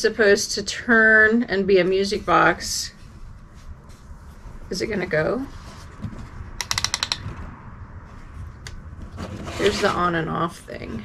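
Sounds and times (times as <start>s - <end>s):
music box mechanism clicking: 6.6s - 7.2s
ratchet clicks: 6.6s - 7.3s.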